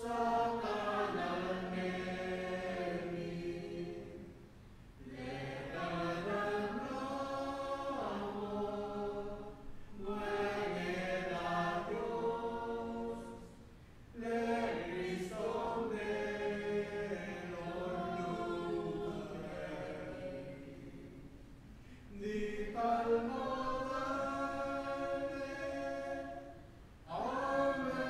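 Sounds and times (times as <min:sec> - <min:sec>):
congregation singing a hymn: 0:00.0 - 0:28.0.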